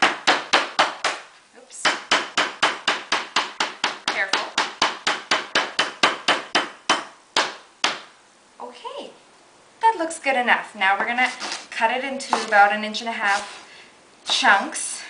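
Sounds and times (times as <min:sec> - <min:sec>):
knife pounding stalk on cutting board: 0:00.0 - 0:01.2, 0:01.8 - 0:08.1.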